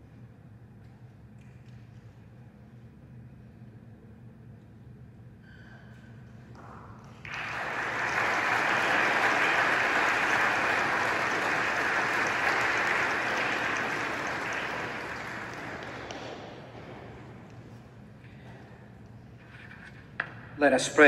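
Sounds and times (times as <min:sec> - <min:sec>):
congregation applauding: 0:07.1 - 0:16.8.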